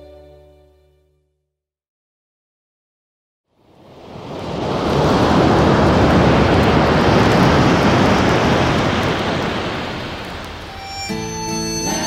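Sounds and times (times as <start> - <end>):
instrumental music notes: 0.0 - 1.4, 10.6 - 12.0.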